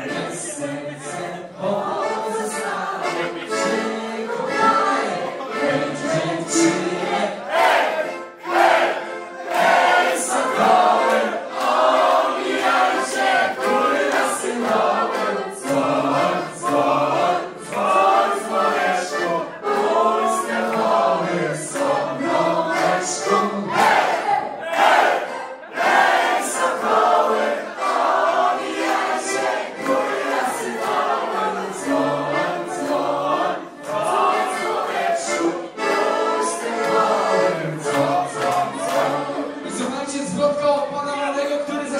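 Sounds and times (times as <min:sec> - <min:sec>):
group singing in chorus: 0:00.0 - 0:39.9.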